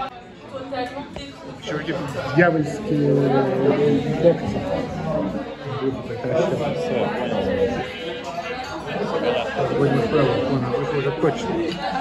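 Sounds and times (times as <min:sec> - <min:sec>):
people talking in a cafe: 0:00.0 - 0:12.0.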